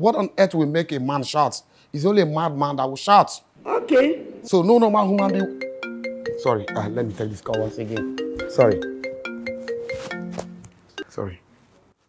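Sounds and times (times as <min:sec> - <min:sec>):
mobile phone ringtone: 0:05.2 - 0:11.2.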